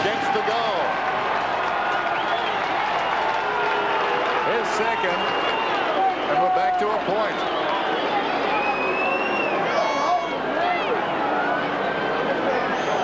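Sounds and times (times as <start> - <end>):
crowd whistling: 0.0 - 13.0
stadium crowd cheering and shouting: 0.0 - 13.0.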